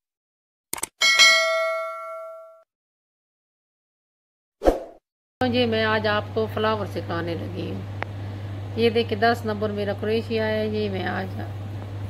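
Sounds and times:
notification bell ding: 0:01.0 - 0:02.6.

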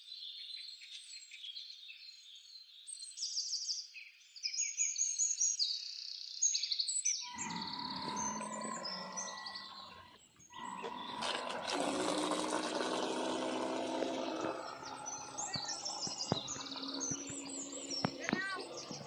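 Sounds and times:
birds chirping: 0:07.2 - 0:19.0
water rushing: 0:10.6 - 0:19.0.

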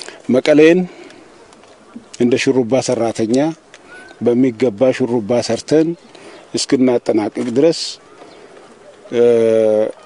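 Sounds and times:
faint outdoor background noise: 0:00.0 - 0:10.0
man speaking: 0:00.2 - 0:01.0, 0:02.2 - 0:08.1, 0:09.1 - 0:10.0.

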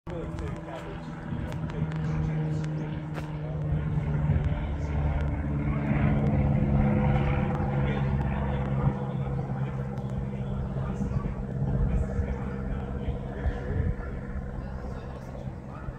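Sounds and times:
light aircraft propeller drone: 0:00.1 - 0:15.9.

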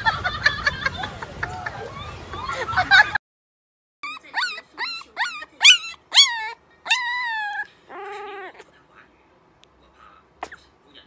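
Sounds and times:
puppy yelping: 0:04.0 - 0:08.7.

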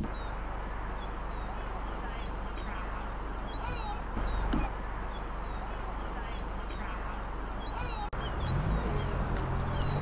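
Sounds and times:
high whistled bird notes: 0:00.0 - 0:06.8, 0:07.6 - 0:10.0
squawky bird calls: 0:00.0 - 0:10.0
steady low hum: 0:00.0 - 0:10.0.

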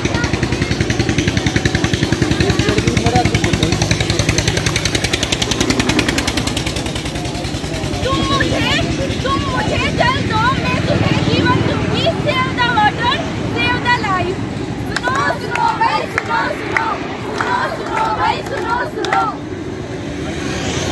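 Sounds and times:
small engine running: 0:00.0 - 0:20.9
voices: 0:00.0 - 0:20.9.

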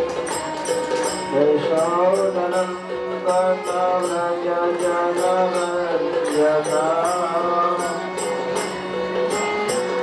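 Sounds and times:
metallic percussion beat: 0:00.0 - 0:10.0
devotional chant singing: 0:01.3 - 0:08.4.

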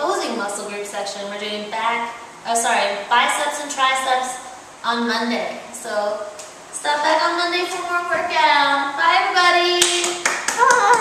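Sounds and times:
hands clapping: 0:09.8 - 0:11.0.

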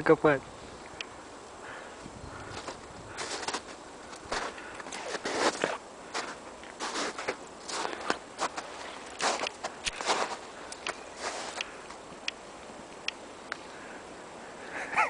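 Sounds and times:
footsteps crunching in snow: 0:02.4 - 0:12.0.

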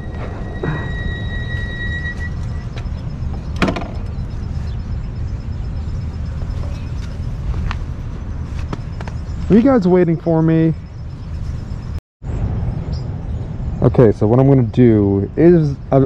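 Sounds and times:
thin steady whine: 0:00.0 - 0:12.0
wind and road noise: 0:00.0 - 0:16.0.

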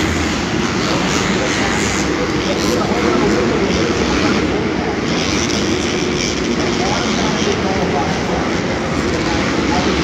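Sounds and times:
dirt bike engines revving: 0:00.0 - 0:10.0.

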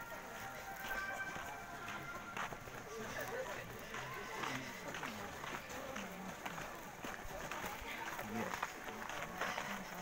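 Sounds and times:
footsteps on packed snow: 0:00.0 - 0:10.0
people talking indistinctly: 0:00.2 - 0:10.0.

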